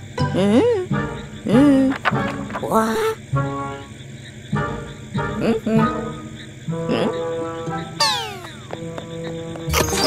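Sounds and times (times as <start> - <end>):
soft cartoon background music: 0.0 - 10.0.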